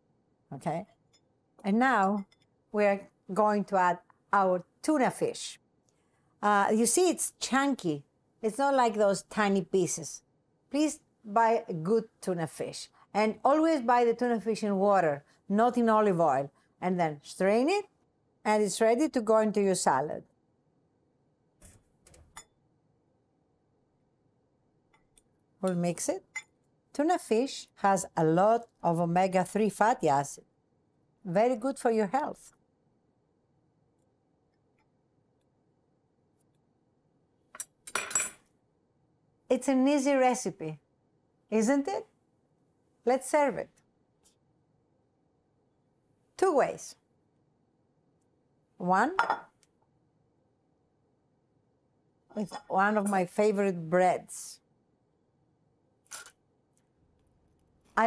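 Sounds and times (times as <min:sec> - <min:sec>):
plate clinking on wooden counter: 0:49.2 - 0:49.5.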